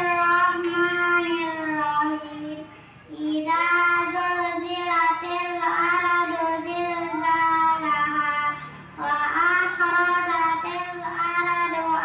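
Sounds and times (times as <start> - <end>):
girl chanting into a microphone: 0.0 - 12.0.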